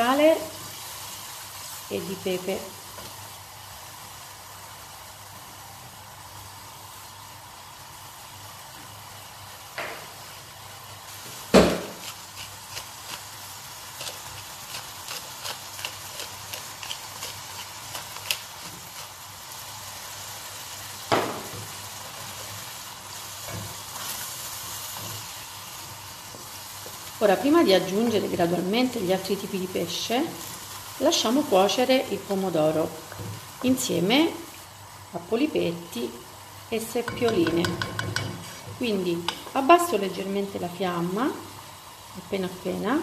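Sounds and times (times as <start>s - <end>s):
soup sizzling in a pot: 0.0s - 43.0s
spoon knocking on pot: 37.1s - 38.4s.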